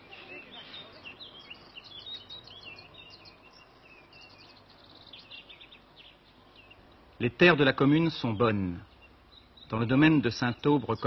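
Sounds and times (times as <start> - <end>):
birds chirping and twittering: 0.0 - 11.0
steady background hiss: 0.0 - 11.0.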